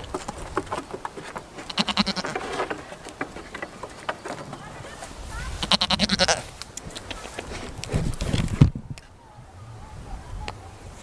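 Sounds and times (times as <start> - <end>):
goat bleating: 1.6 - 2.4, 5.5 - 6.5.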